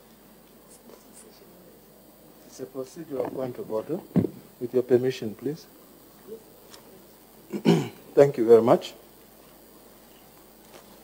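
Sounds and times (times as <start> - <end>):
faint scratchy sounds: 0.0 - 11.0.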